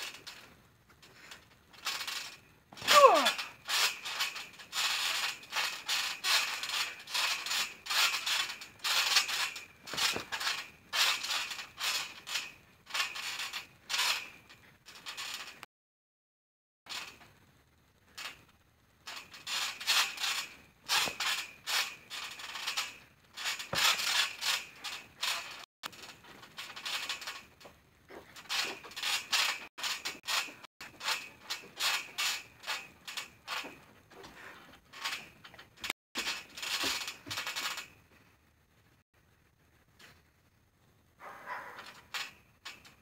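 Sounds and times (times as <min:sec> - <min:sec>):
trampoline springs creaking: 0:00.0 - 0:15.7, 0:16.9 - 0:43.0.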